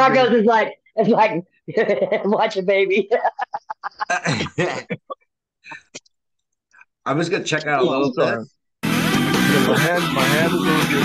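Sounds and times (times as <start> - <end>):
man clearing his throat: 4.1 - 6.0.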